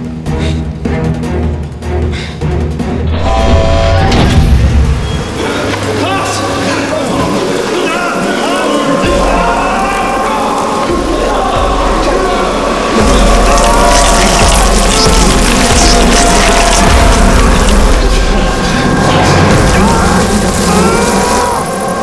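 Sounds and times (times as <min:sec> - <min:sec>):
tense horror film score: 0:00.0 - 0:22.0.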